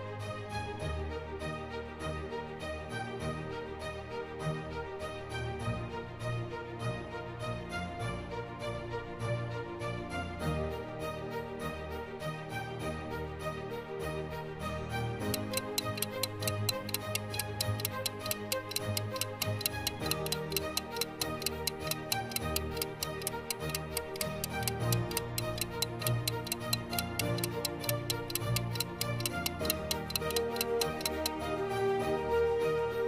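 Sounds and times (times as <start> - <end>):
soft background music: 0.0 - 33.0
fast clock ticking: 15.2 - 31.4.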